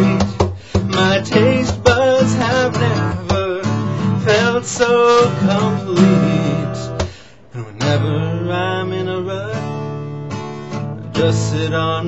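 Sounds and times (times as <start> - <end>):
man singing wordless note: 0.0 - 9.8, 11.0 - 12.0
acoustic guitar strummed: 0.0 - 12.0.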